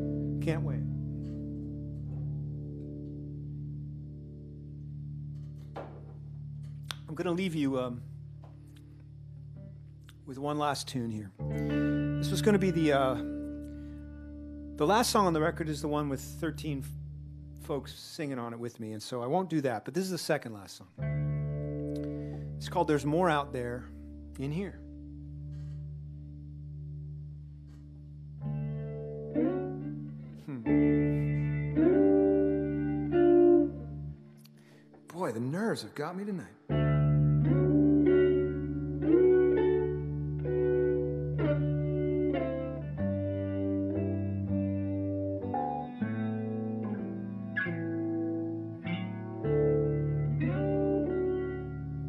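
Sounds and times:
electric guitar chord ringing: 0:00.0 - 0:09.8, 0:11.4 - 0:17.9, 0:21.0 - 0:35.0, 0:36.6 - 0:52.0.

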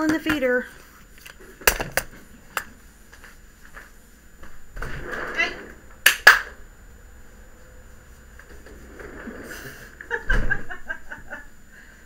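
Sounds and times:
people talking: 0:00.0 - 0:00.7
people laughing: 0:09.5 - 0:11.5.

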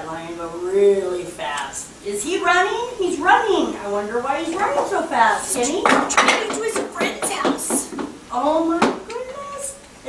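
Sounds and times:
woman's voice: 0:00.0 - 0:09.9.

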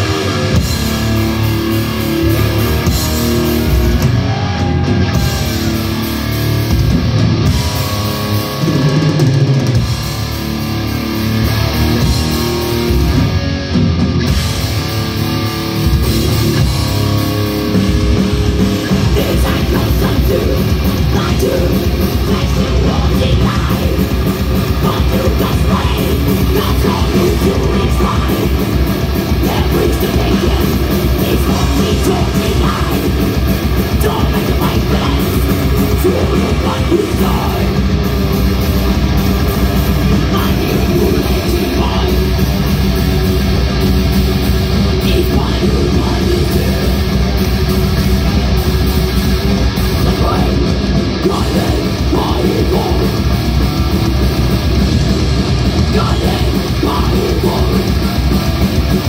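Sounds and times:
bass guitar: 0:00.0 - 0:59.0
distorted electric guitars: 0:00.0 - 0:59.0
drum kit: 0:00.0 - 0:59.0.

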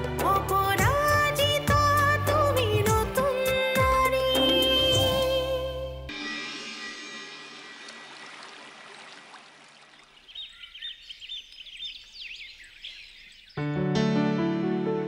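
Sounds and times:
birds chirping: 0:06.1 - 0:13.8.

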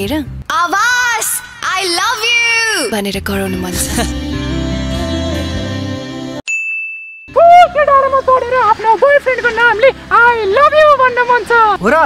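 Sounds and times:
high-pitched voice calling out: 0:00.5 - 0:04.0
background music: 0:02.1 - 0:06.4, 0:07.3 - 0:12.0
ding sound effect: 0:06.5 - 0:07.4.

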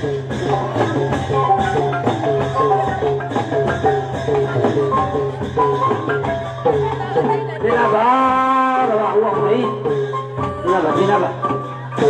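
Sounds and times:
melody of bending notes: 0:00.0 - 0:12.0
quick percussion beat: 0:00.0 - 0:12.0.

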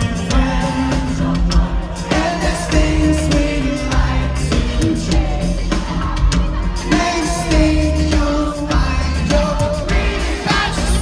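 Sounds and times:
live pop-rock band: 0:00.0 - 0:11.0.

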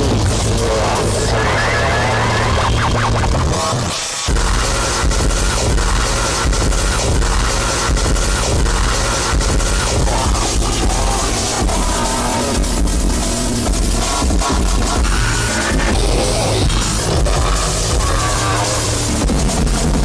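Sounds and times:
electronic music with strong bass: 0:00.0 - 0:20.0.

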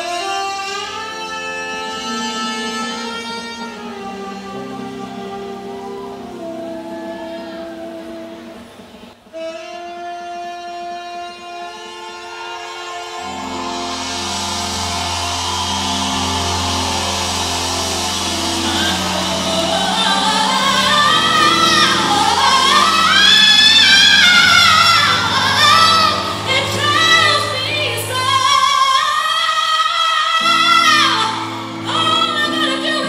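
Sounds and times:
jazz band playing: 0:00.0 - 0:29.3
woman singing high notes: 0:11.8 - 0:33.0.

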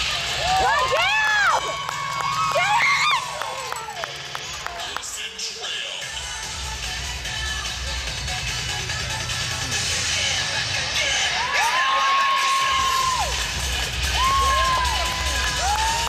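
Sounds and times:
crowd cheering: 0:00.0 - 0:05.8, 0:11.0 - 0:16.0
dance music with pulsing bass: 0:00.0 - 0:11.4, 0:12.7 - 0:16.0
long whoops: 0:00.4 - 0:04.0, 0:11.4 - 0:13.4, 0:14.1 - 0:16.0.

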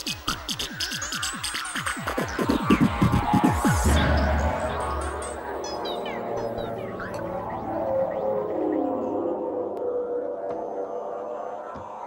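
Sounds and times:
sustained synthesizer tones: 0:02.0 - 0:12.0.

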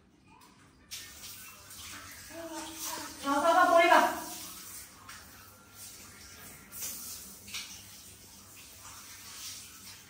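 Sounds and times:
shower spraying water: 0:00.8 - 0:10.0
small child's voice: 0:02.3 - 0:04.0.

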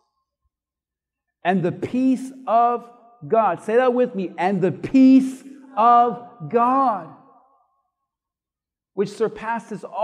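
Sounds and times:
man speaking: 0:01.4 - 0:07.4, 0:09.0 - 0:10.0.

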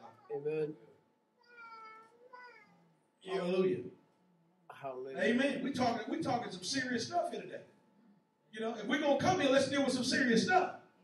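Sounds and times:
faint high-pitched voice calling: 0:00.0 - 0:00.8, 0:01.4 - 0:03.6.

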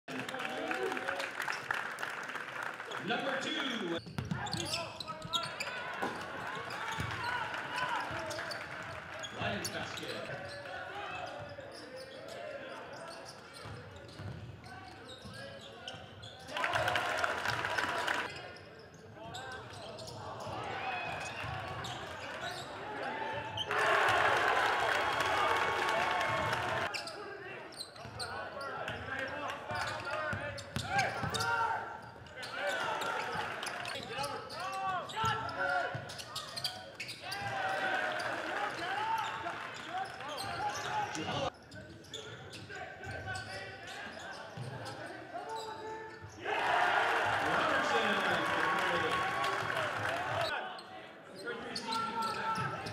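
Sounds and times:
voices of players and spectators: 0:00.1 - 0:52.9
sneakers squeaking: 0:04.0 - 0:07.4, 0:08.0 - 0:16.5, 0:18.2 - 0:23.8, 0:26.4 - 0:29.1, 0:29.7 - 0:46.4, 0:51.3 - 0:52.9.

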